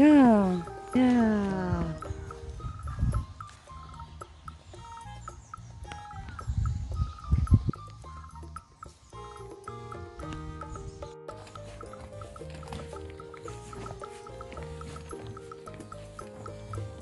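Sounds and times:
light background music: 0:00.0 - 0:17.0.

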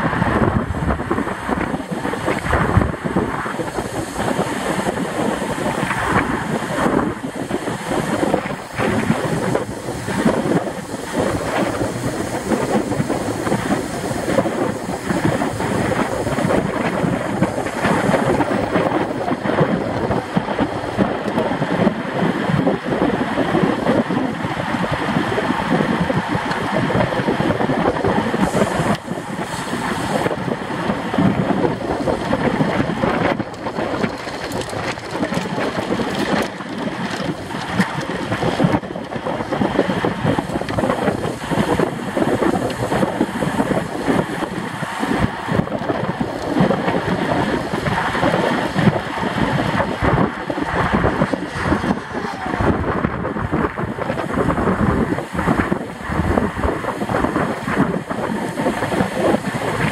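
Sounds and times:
tyres rumbling on road: 0:00.0 - 0:59.9
wind buffeting microphone: 0:00.0 - 0:59.9.

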